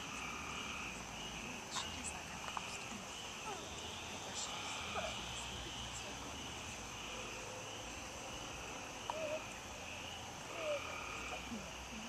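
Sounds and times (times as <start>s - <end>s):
night insects chorus: 0.0s - 12.0s.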